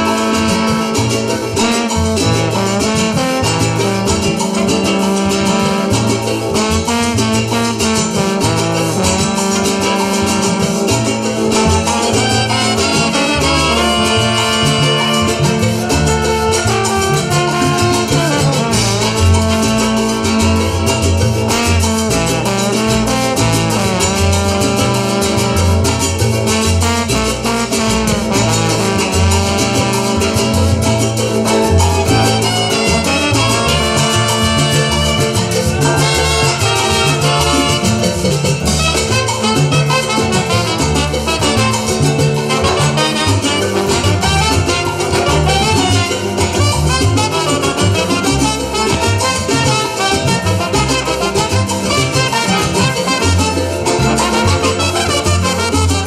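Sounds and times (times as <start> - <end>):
double bass: 0.0 - 56.0
guitars: 0.0 - 56.0
trumpets and saxophone melody: 0.0 - 56.0.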